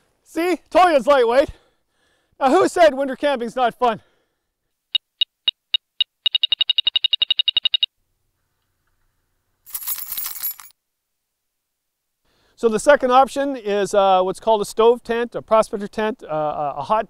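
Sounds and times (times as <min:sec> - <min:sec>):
metal detector beeping: 0:04.9 - 0:07.9.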